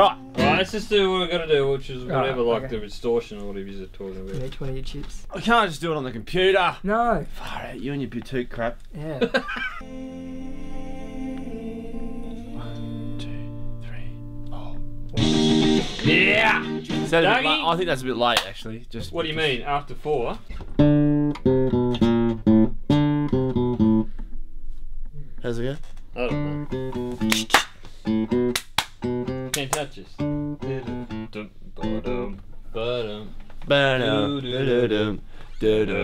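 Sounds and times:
classical guitar plucked: 0:00.0 - 0:00.7, 0:20.5 - 0:24.2, 0:26.2 - 0:27.5, 0:28.1 - 0:29.6, 0:30.2 - 0:32.4
man talking: 0:00.0 - 0:09.3, 0:12.6 - 0:20.4, 0:29.5 - 0:36.0
electric guitar playing loudly: 0:09.8 - 0:17.3.

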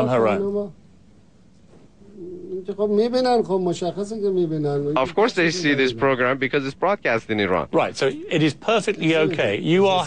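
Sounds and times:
man speaking: 0:02.1 - 0:10.0.

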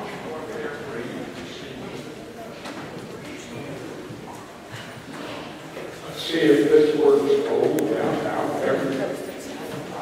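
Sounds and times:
faint murmur of voices: 0:00.0 - 0:10.0.

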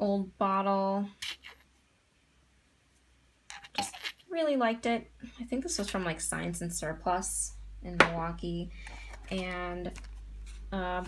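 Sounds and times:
glass stopper scraping and clinking: 0:03.5 - 0:04.2.

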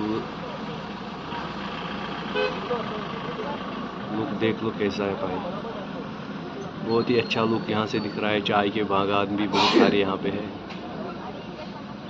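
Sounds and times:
vehicle noise: 0:00.0 - 0:12.0
vehicle horn toot: 0:02.4 - 0:02.6.

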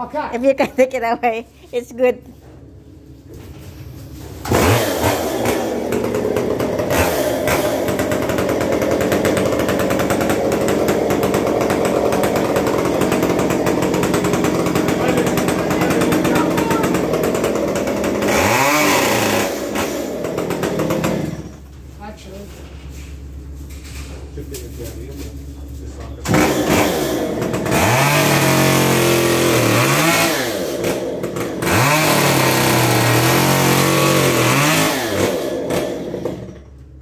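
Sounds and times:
chainsaw running: 0:04.2 - 0:21.8, 0:26.2 - 0:37.0.

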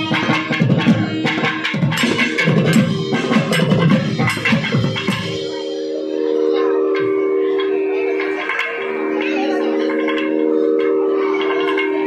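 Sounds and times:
electronic shruti box drone: 0:00.0 - 0:12.0.

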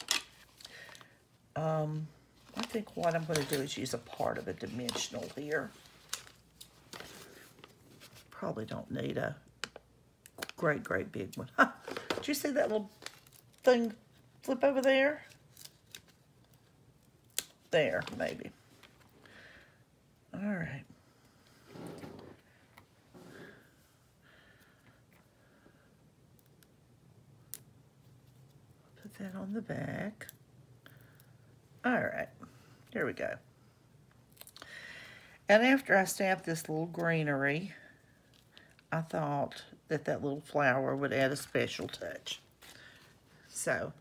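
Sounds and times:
paper rustling: 0:02.4 - 0:08.4, 0:11.9 - 0:13.9.

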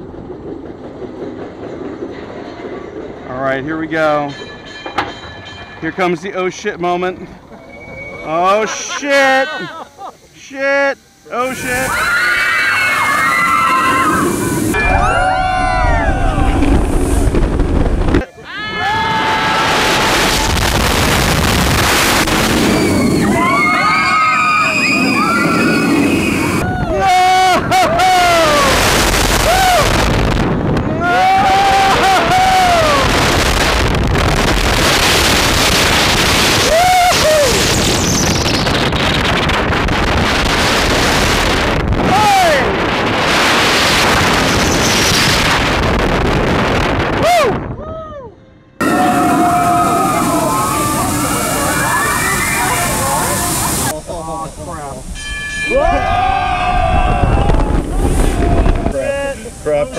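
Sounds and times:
coaster train rumble: 0:00.0 - 0:59.9
riders screaming: 0:11.3 - 0:16.8, 0:18.4 - 0:20.7, 0:22.5 - 0:30.1, 0:30.9 - 0:33.4, 0:36.5 - 0:38.4, 0:48.8 - 0:53.6, 0:55.6 - 0:59.0
wind rushing over microphone: 0:12.9 - 0:18.2, 0:18.9 - 0:48.0, 0:55.8 - 0:59.9.

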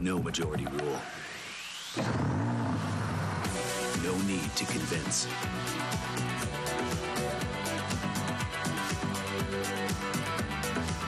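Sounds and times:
music: 0:00.0 - 0:11.0
car engine revving: 0:01.1 - 0:04.0.

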